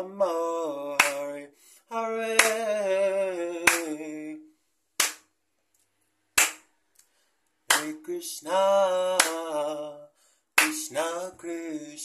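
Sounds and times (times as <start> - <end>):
man singing: 0.0 - 4.5, 7.7 - 12.0
hand clap: 1.0 - 1.4, 2.4 - 2.8, 3.6 - 4.0, 5.0 - 5.3, 6.4 - 7.1, 7.7 - 8.0, 9.1 - 9.6, 10.6 - 11.0.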